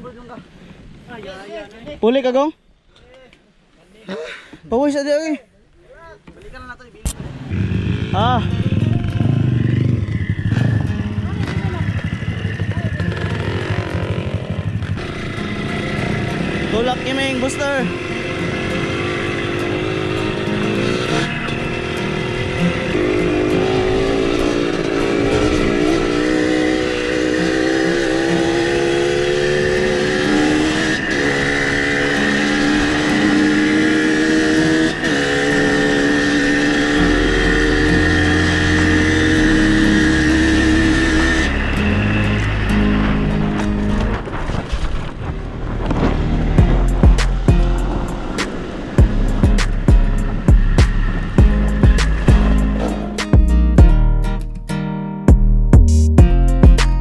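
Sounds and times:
dirt bike engine accelerating: 0:07.1 - 0:54.0
music with stepping bass line: 0:46.6 - 0:48.2, 0:49.0 - 0:57.0.

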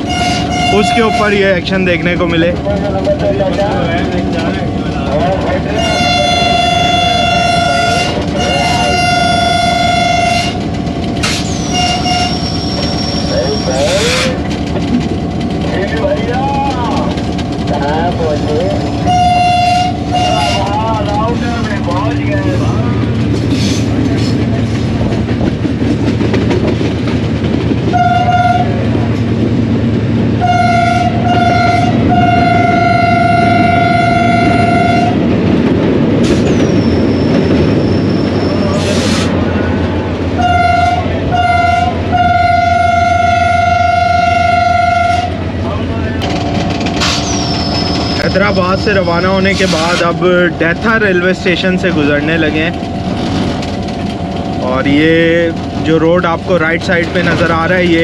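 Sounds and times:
locomotive horn blasts: 0:00.0 - 0:01.5, 0:05.7 - 0:10.6, 0:11.7 - 0:12.5, 0:19.0 - 0:20.8, 0:27.9 - 0:28.8, 0:30.4 - 0:35.2, 0:40.4 - 0:45.4
moving train rumble: 0:00.0 - 0:58.0.

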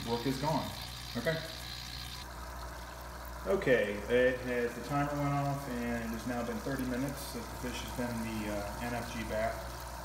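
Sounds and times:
aquarium air stone bubbling: 0:00.0 - 0:10.0
steady low hum: 0:00.0 - 0:10.0.

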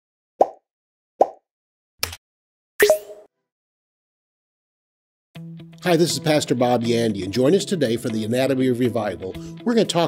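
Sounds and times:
pop sound effects: 0:02.8 - 0:03.3.

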